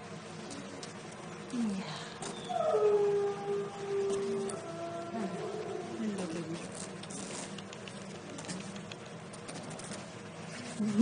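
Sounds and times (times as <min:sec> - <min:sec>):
dog howling and whining: 0:02.3 - 0:06.6.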